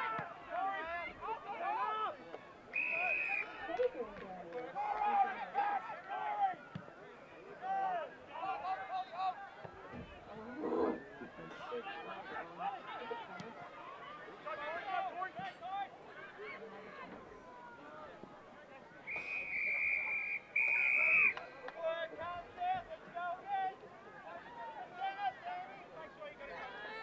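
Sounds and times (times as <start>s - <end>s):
spectators chatting: 0.0s - 27.0s
referee whistle blasts: 2.7s - 3.6s, 19.0s - 21.4s.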